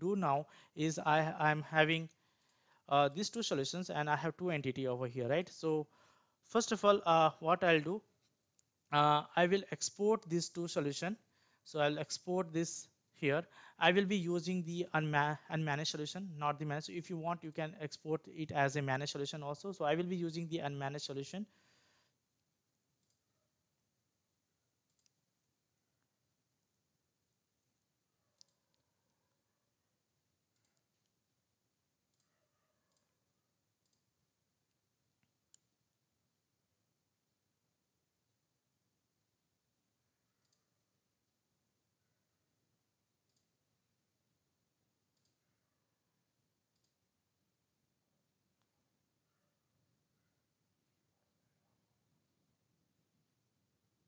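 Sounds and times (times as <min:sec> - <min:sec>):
computer mouse clicks: 0:23.0 - 0:23.3, 0:24.8 - 0:25.3, 0:28.4 - 0:28.9, 0:30.5 - 0:31.2, 0:32.9 - 0:33.2, 0:33.8 - 0:34.2, 0:35.2 - 0:35.8, 0:40.4 - 0:40.7, 0:43.2 - 0:43.6, 0:45.1 - 0:45.4, 0:46.7 - 0:47.0.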